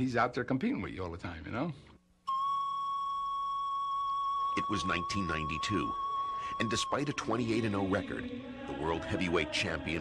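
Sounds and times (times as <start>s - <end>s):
steady high-pitched tone: 2.3s - 10.0s.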